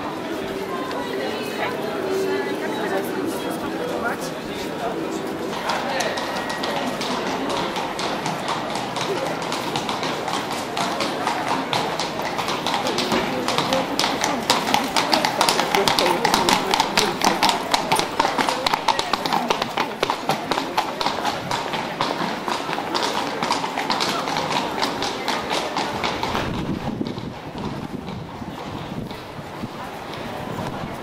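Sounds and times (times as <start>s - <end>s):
crowd chatter: 0.0s - 31.0s
hooves clip-clopping on pavement: 3.6s - 31.0s.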